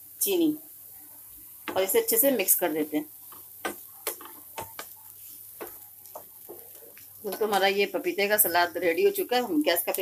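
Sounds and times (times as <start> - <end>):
spatula stirring in a pan: 0.8 - 10.0.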